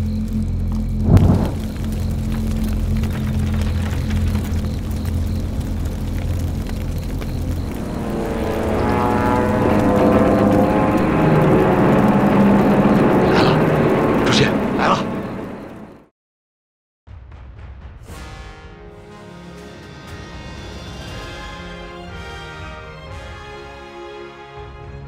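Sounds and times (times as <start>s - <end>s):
propeller aircraft drone: 0.0s - 16.1s
fire flaring whoosh: 0.8s - 14.6s.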